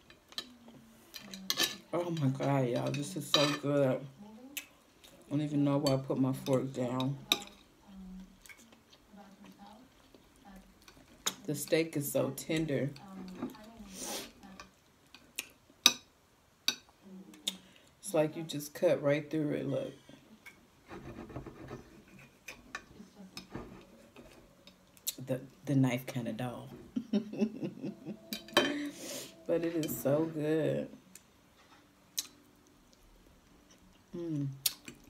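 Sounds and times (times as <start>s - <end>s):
knife scraping on a plate: 20.9s - 24.4s
person humming mm while eating: 34.1s - 34.9s.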